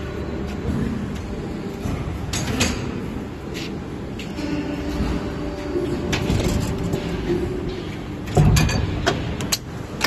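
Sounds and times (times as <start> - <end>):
machine humming: 0.0 - 10.0.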